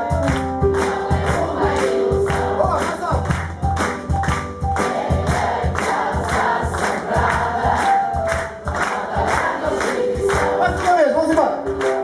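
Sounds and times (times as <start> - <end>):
drums: 0.0 - 10.9
bass: 0.0 - 12.0
piano: 0.0 - 12.0
crowd singing along: 0.6 - 2.9, 4.8 - 12.0.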